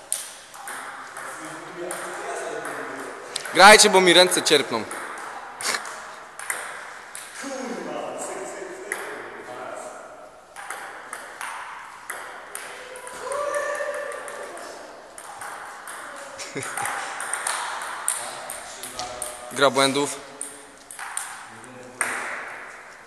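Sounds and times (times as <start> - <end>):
table tennis ball clicking: 16.7 - 19.4, 20.4 - 21.4.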